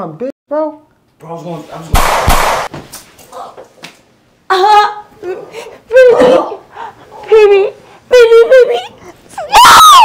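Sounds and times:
woman crying: 4.5 - 6.7, 7.3 - 10.0
woman screaming: 9.4 - 10.0.

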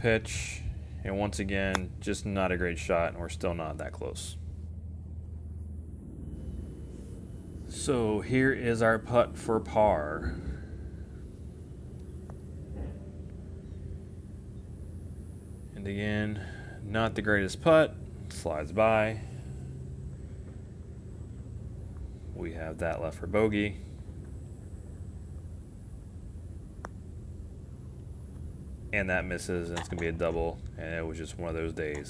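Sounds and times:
low outdoor rumble: 0.0 - 32.0
putter striking golf ball: 29.7 - 30.4.

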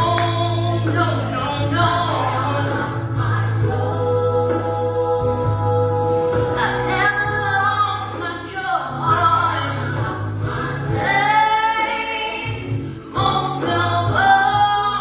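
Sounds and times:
low musical accompaniment: 0.0 - 15.0
woman singing gospel: 0.0 - 15.0.

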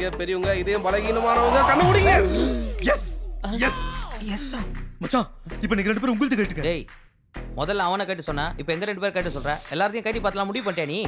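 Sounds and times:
man speaking: 0.0 - 6.8.

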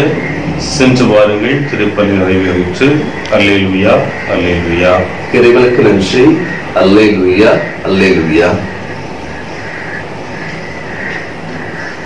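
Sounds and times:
faint low hum: 0.0 - 12.0
steady rushing noise: 0.0 - 12.0.

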